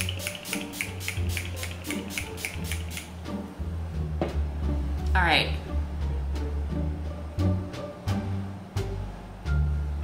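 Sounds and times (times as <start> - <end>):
spray bottle spritzing: 0.0 - 3.1
background music: 0.0 - 10.0.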